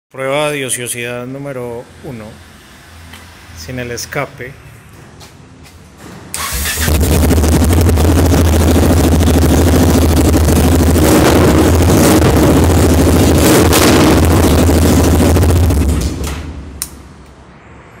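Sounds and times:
motorcycle engine starting and running: 0:06.3 - 0:16.9.

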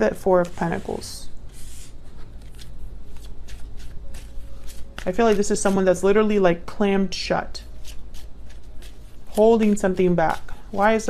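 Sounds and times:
cards being shuffled by hand: 0:00.4 - 0:05.9, 0:07.7 - 0:11.0.

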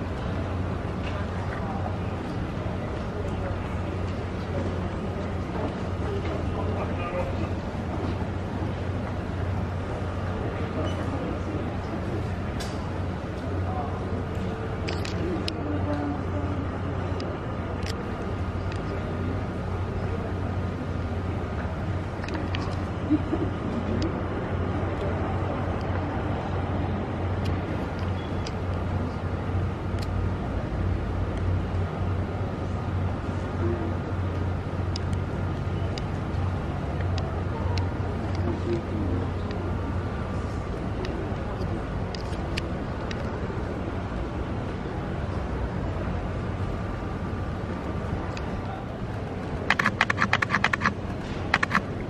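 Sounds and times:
city street noise: 0:00.0 - 0:52.0
faint muffled voices: 0:00.0 - 0:52.0
low urban rumble: 0:00.0 - 0:52.0.

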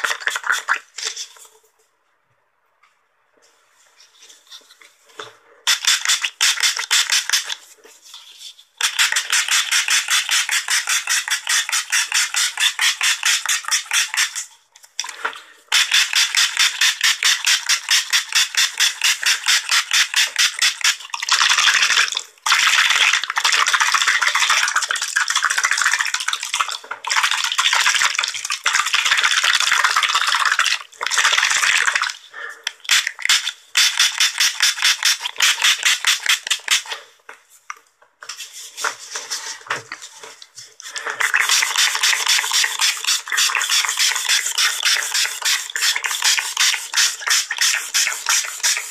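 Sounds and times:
spray bottle hissing sprays: 0:32.9 - 0:37.0, 0:41.2 - 0:48.9.

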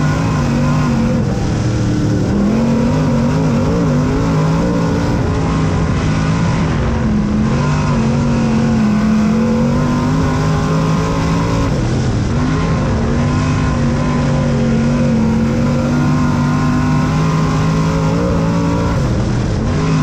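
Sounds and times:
race car engine at high revs: 0:00.0 - 0:20.0.

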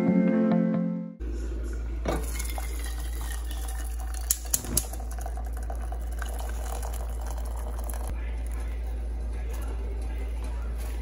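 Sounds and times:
water pouring into a saucepan: 0:02.2 - 0:08.1.

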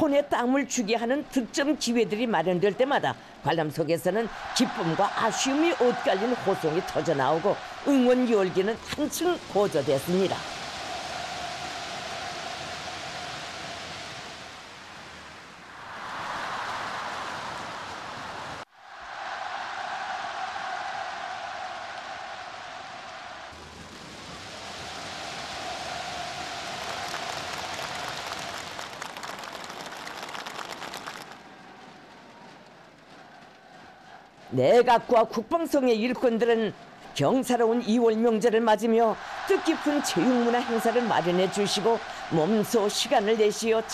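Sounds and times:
stadium crowd cheering and clapping: 0:00.0 - 0:43.9.

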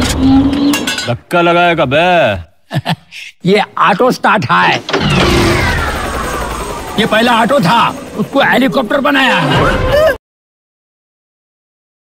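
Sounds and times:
helicopter engine starting up: 0:04.8 - 0:10.1.

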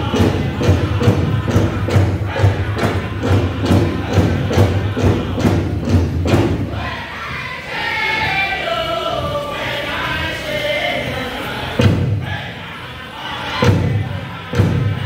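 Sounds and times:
big drum beating steadily: 0:00.0 - 0:07.1, 0:11.8 - 0:12.6, 0:13.6 - 0:15.0
group singing: 0:00.0 - 0:15.0.

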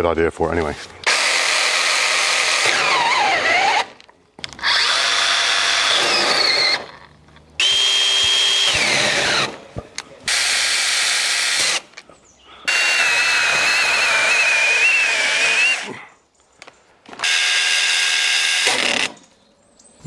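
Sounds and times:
mini chainsaw motor whine: 0:01.0 - 0:07.0, 0:07.6 - 0:09.6, 0:12.7 - 0:16.0, 0:17.2 - 0:19.2.

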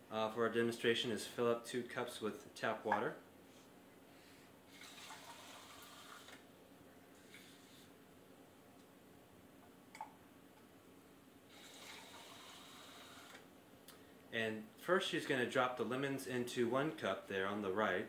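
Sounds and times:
faucet running into plastic cup: 0:04.7 - 0:06.4, 0:11.5 - 0:13.4.

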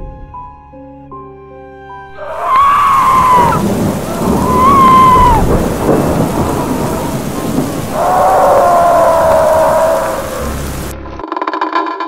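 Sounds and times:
long held falling tone: 0:02.1 - 0:10.9
thunder rumbling: 0:02.1 - 0:11.0
heavy rain: 0:02.1 - 0:11.1.

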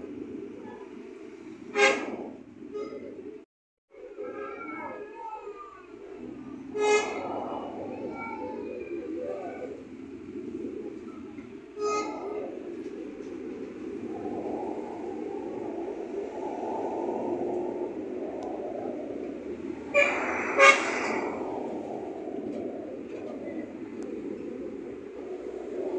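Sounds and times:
city traffic: 0:00.0 - 0:25.9
car horns honking: 0:01.7 - 0:02.2, 0:06.7 - 0:07.2, 0:19.9 - 0:20.8.

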